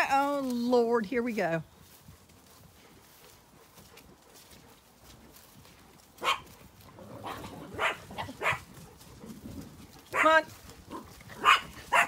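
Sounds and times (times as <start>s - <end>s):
small dog barking: 6.2s - 6.5s, 7.2s - 8.7s, 10.1s - 12.0s.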